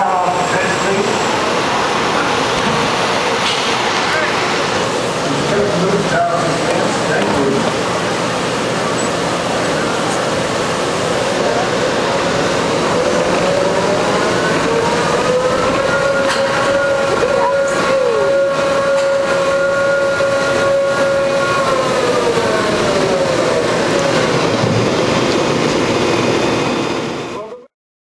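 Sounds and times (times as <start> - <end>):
constant rushing noise: 0.0 - 27.6
ride machinery whining: 0.0 - 27.6.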